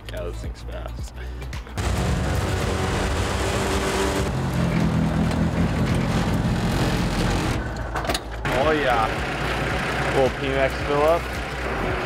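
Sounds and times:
wind and road noise: 1.4s - 12.0s
engine running: 1.8s - 12.0s.

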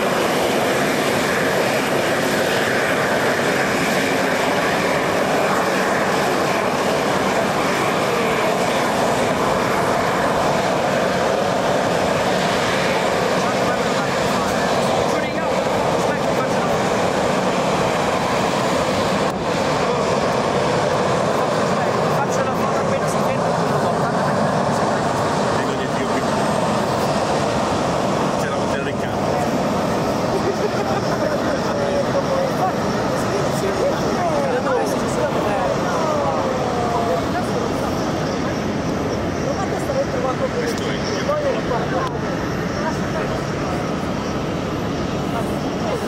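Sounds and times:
jet engines running at low thrust: 0.0s - 46.0s.

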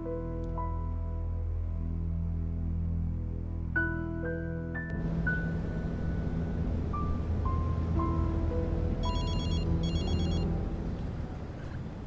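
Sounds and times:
background music: 0.0s - 11.4s
low rumble: 4.9s - 12.0s
electronic telephone ringing: 9.0s - 10.5s.

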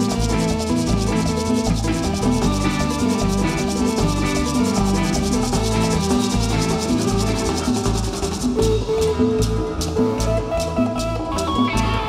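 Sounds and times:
fast scraping percussion: 0.0s - 12.0s
live band playing upbeat groove: 0.0s - 12.0s.

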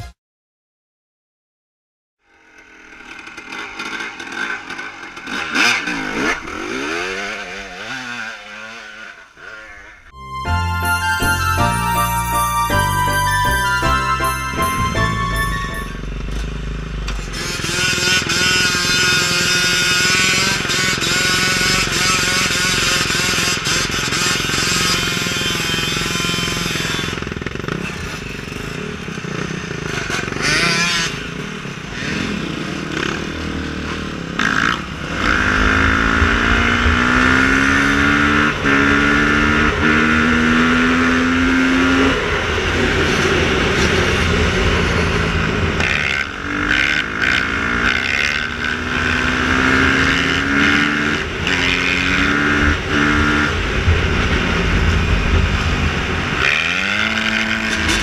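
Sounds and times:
dirt bike engine accelerating: 2.2s - 58.0s.

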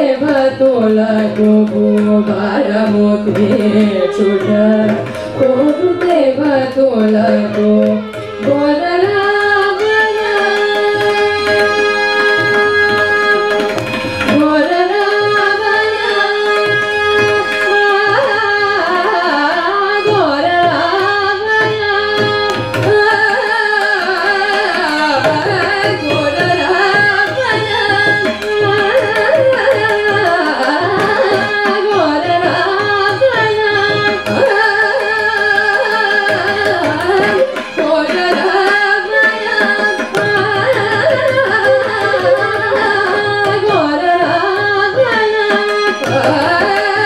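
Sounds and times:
women singing duet: 0.0s - 13.6s, 14.3s - 47.0s
violin accompaniment: 0.0s - 47.0s.

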